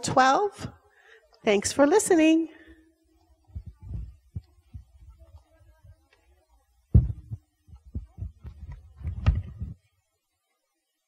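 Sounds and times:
dull low thumps and knocks: 3.5s - 5.1s, 6.9s - 9.8s.

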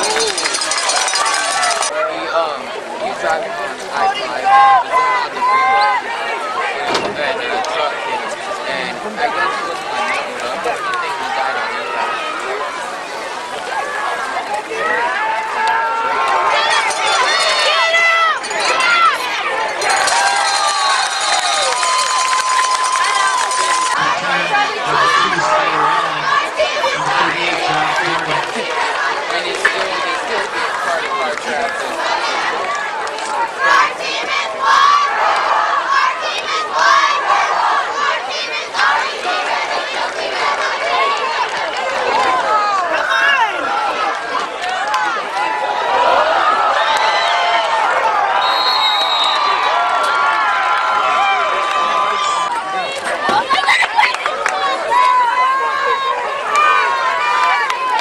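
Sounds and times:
crowd cheering and shouting: 0.0s - 58.0s.

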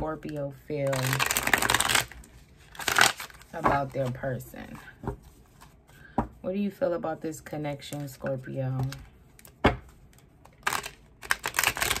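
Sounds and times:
cards being riffle-shuffled: 1.0s - 4.2s, 8.8s - 12.0s.

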